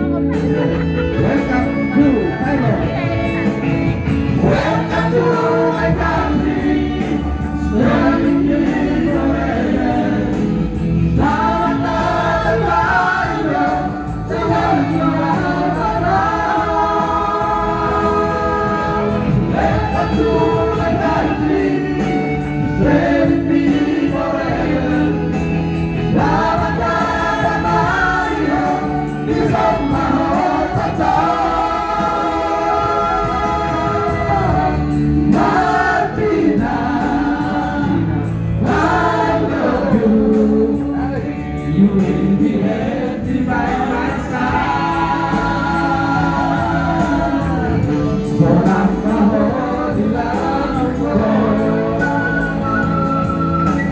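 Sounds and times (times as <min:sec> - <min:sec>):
amplified music accompaniment: 0:00.0 - 0:53.9
men singing into microphones: 0:00.0 - 0:53.9.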